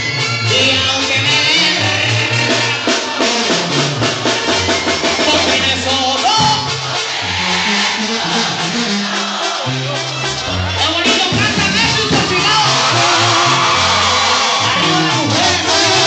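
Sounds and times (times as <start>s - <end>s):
drums: 0.0s - 16.0s
live band music over a pa: 0.0s - 16.0s
man singing into a microphone: 0.4s - 3.7s, 5.2s - 6.7s, 14.6s - 16.0s
deep bass notes: 5.1s - 16.0s.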